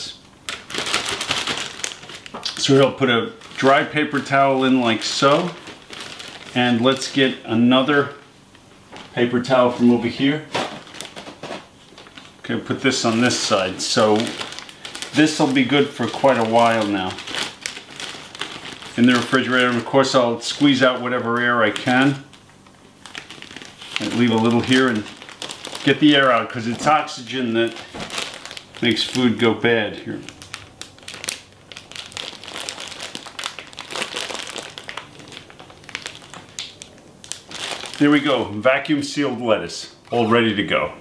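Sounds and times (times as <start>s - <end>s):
plastic bag crinkling: 0.0s - 40.4s.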